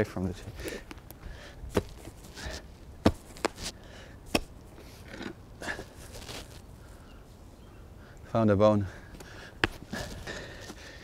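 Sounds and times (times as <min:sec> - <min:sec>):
soil scraping rustles: 0:01.7 - 0:07.0.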